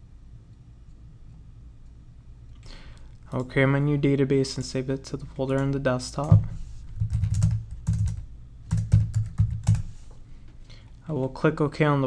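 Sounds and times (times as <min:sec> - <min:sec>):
computer keyboard typing: 0:05.5 - 0:09.9.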